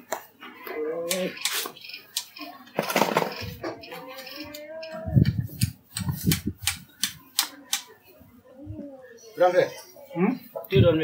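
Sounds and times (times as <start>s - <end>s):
sharp clicks: 5.6s - 7.9s.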